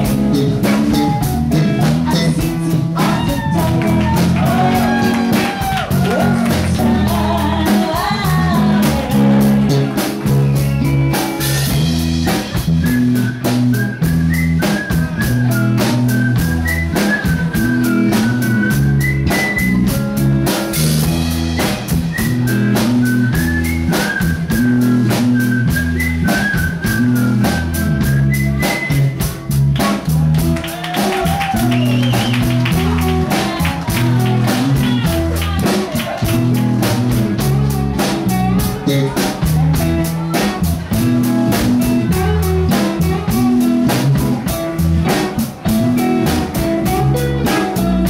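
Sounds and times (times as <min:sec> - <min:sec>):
live band playing instrumental: 0:00.0 - 0:48.0.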